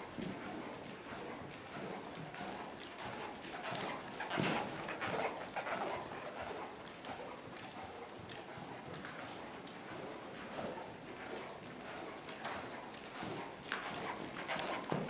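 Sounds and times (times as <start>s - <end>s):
horse hoofbeats on dirt: 0.0s - 15.0s.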